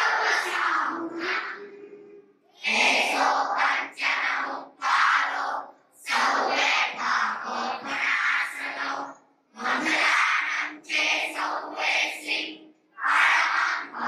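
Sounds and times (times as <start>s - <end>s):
group chanting a prayer: 0.0s - 14.0s.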